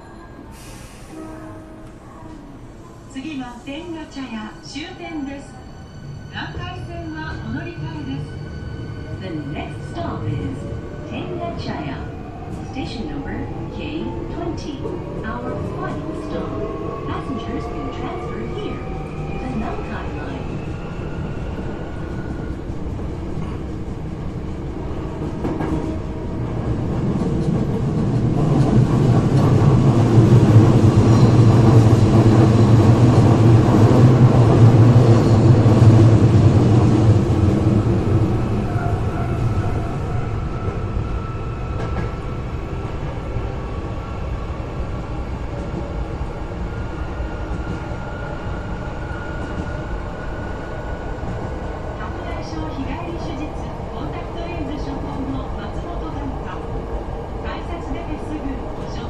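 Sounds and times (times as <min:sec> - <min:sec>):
train rumbling in tunnel: 0:00.0 - 0:59.0.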